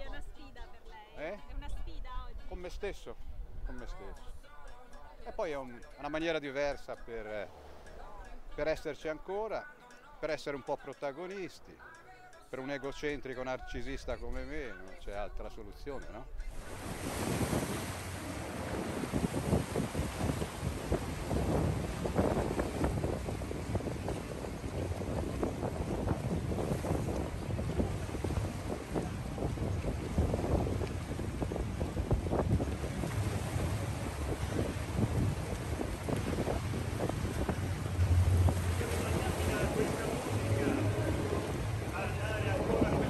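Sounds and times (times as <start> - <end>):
sea waves washing against rocks: 16.4 - 43.0
wind buffeting microphone: 16.5 - 43.0.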